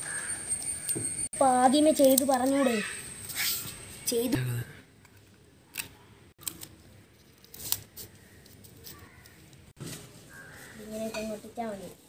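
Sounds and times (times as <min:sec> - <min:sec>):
newspaper and stick handling on concrete: 0:01.8 - 0:04.0, 0:05.0 - 0:12.0.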